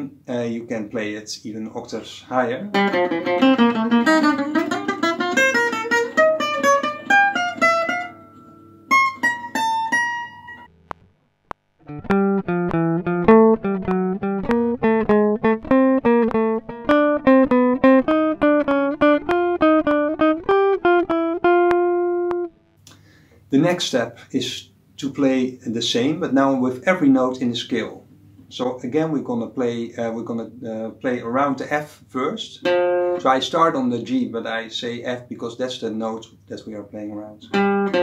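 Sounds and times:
guitar playing single-note riff: 2.6s - 10.8s, 11.8s - 22.8s, 32.6s - 33.7s, 37.4s - 38.0s.

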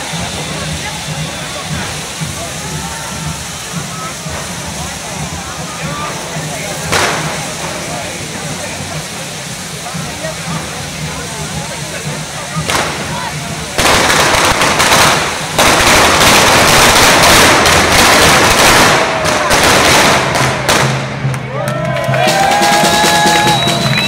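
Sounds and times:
fireworks sparks hissing and crackling: 0.0s - 24.0s
rapid small bangs: 6.8s - 7.9s, 12.6s - 13.2s, 13.8s - 21.2s.

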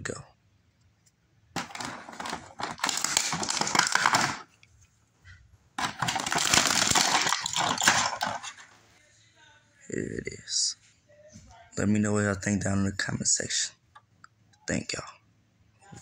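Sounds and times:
plastic packaging crackling: 1.6s - 4.6s, 5.8s - 8.7s.

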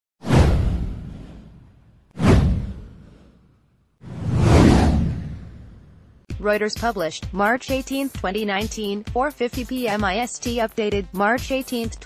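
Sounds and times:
deep boom: 0.2s - 3.3s, 4.1s - 6.3s
whoosh sound effect: 0.2s - 6.2s.

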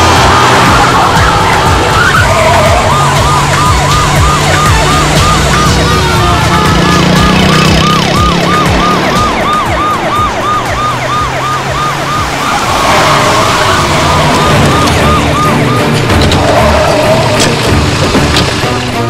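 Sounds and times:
police siren sweeping: 0.0s - 17.8s
vehicle engines droning: 0.0s - 19.0s.

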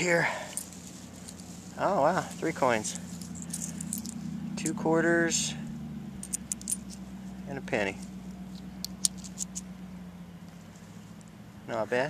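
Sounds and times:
coins clicking in palm: 6.2s - 7.0s.

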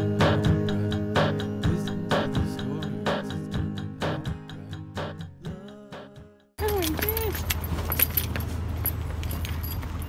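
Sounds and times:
metal pieces jingling: 6.6s - 10.0s.

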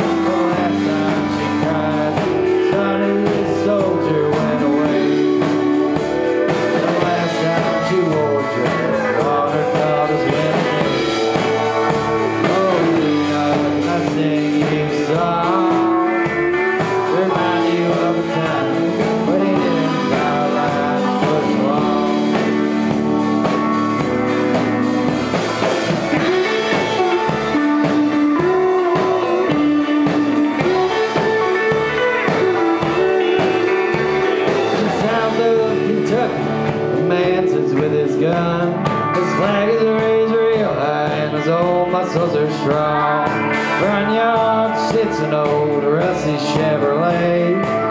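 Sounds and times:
drum kit: 0.0s - 47.9s
electric guitars: 0.0s - 47.9s.

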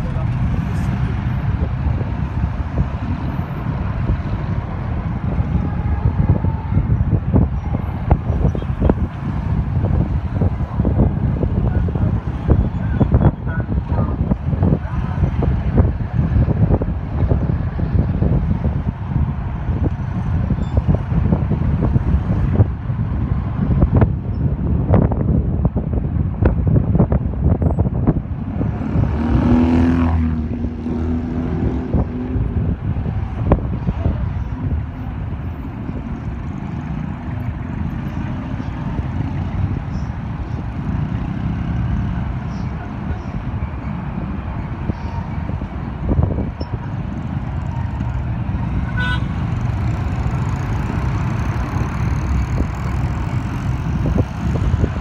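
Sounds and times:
traffic engines rumbling: 0.0s - 55.0s.

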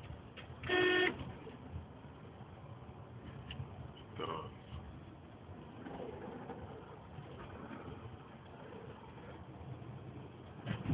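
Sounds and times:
car engine and tyres rumbling: 0.0s - 10.9s.

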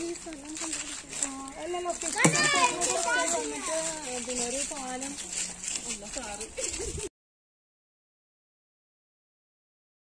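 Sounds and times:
children shouting excitedly: 2.2s - 3.8s.

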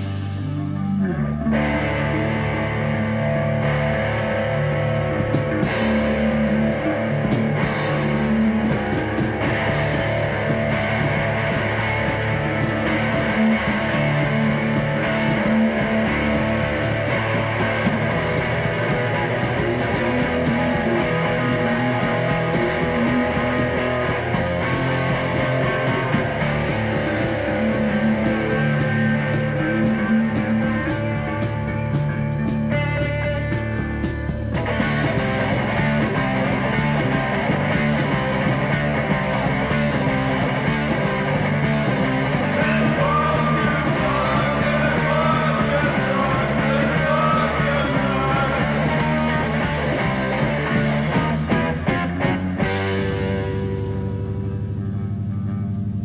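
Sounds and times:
punk band playing live: 0.0s - 56.0s.

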